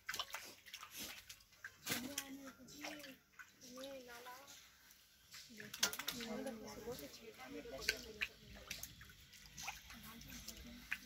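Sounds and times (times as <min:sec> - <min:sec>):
footsteps splashing in shallow water: 0:00.0 - 0:03.9, 0:07.8 - 0:11.0.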